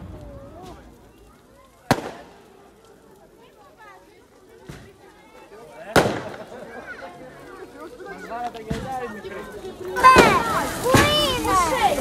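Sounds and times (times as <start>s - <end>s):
firecracker bang: 0.0s - 1.2s, 1.8s - 2.7s, 4.6s - 5.1s, 5.9s - 6.7s, 8.7s - 9.0s, 10.0s - 11.7s
faint voices: 0.0s - 12.0s.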